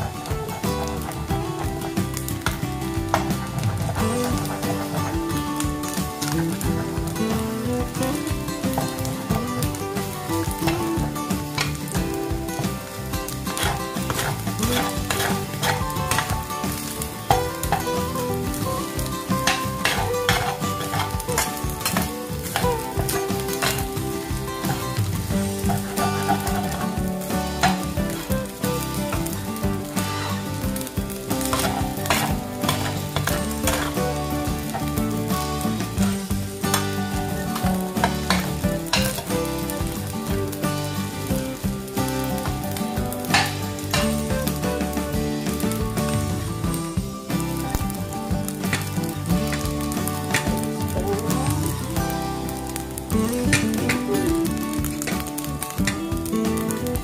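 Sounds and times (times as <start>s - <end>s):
spatula scraping and knocking pan: 0.0s - 51.5s
rice sizzling in frying pan: 0.0s - 57.0s.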